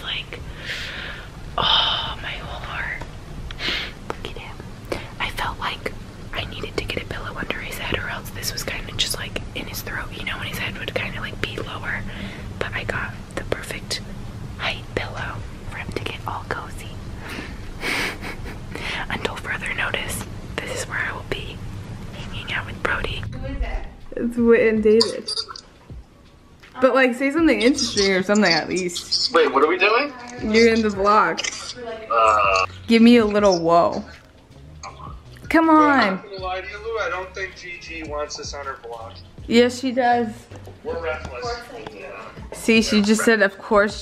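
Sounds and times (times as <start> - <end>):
woman whispering: 0.0 - 0.5, 1.6 - 3.0, 4.0 - 14.0, 14.6 - 17.0, 18.8 - 21.6, 22.2 - 23.4, 27.4 - 29.4, 30.1 - 34.2, 42.2 - 43.6
low steady hum: 0.0 - 44.0.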